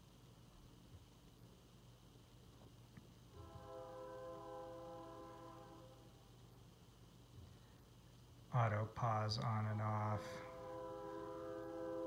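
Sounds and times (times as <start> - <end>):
low steady hum: 0.0 - 12.0
faint horn-like chord: 3.3 - 6.3, 10.0 - 12.0.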